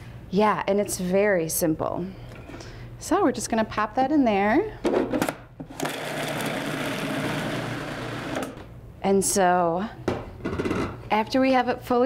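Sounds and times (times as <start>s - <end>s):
food processor motor chopping: 5.7s - 8.6s.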